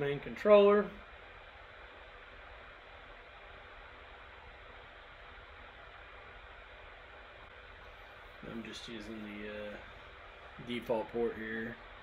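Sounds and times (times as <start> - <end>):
faint microphone hiss: 0.0 - 12.0
low hum: 0.0 - 12.0.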